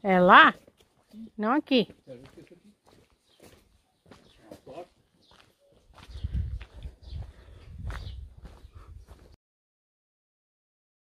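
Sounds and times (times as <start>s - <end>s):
footsteps on cobblestones: 0.4s - 1.2s, 1.8s - 9.4s.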